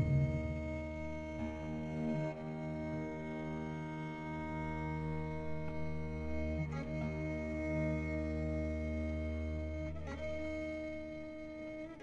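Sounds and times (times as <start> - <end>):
slow bowed string ensemble: 0.0 - 12.0.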